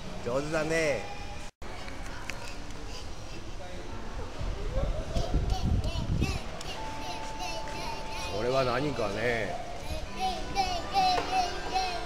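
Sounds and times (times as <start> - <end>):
faint background music: 0.1 - 12.0
child singing high notes: 9.8 - 12.0.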